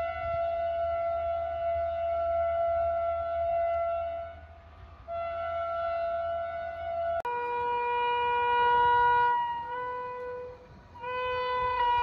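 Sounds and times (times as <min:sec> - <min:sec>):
locomotive air horn blasts: 0:00.0 - 0:12.0
lower-pitched locomotive horn: 0:00.0 - 0:12.0.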